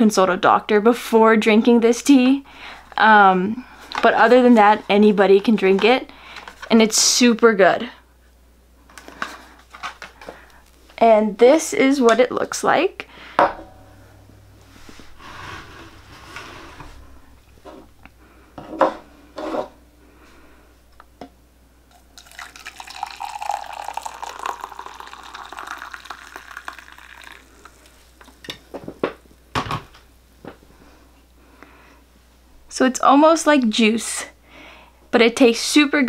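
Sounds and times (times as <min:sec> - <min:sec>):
water pouring into glass mug: 0:21.9 - 0:28.4.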